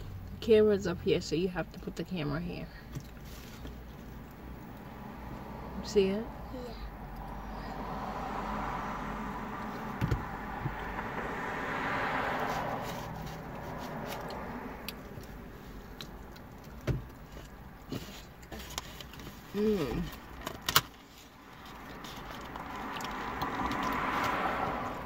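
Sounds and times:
vehicle passing by: 2.6s - 25.0s.

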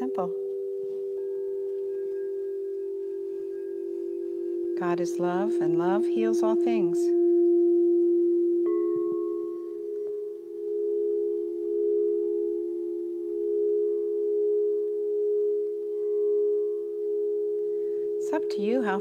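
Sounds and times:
higher singing bowl tone: 0.0s - 19.0s
low singing bowl tone: 0.0s - 19.0s.

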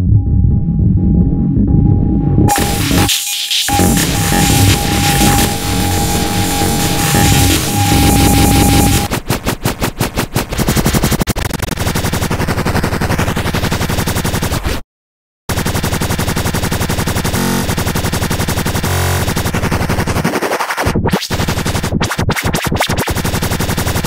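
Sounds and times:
synth bass line: 0.0s - 9.2s
rapid electronic drum hits: 2.4s - 11.8s.

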